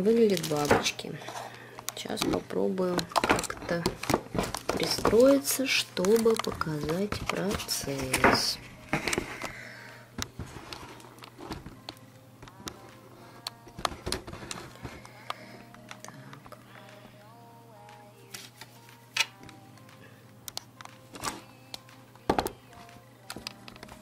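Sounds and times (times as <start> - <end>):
faint background music: 0.0 - 24.0.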